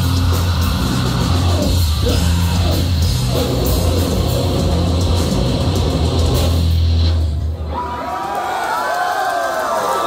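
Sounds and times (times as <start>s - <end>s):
crowd cheering and shouting: 0.0s - 4.9s, 7.4s - 10.0s
live rock band playing: 0.0s - 7.5s.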